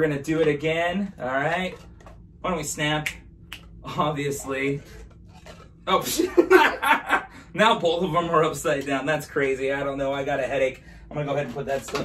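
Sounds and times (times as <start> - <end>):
laughter: 6.0 - 7.3.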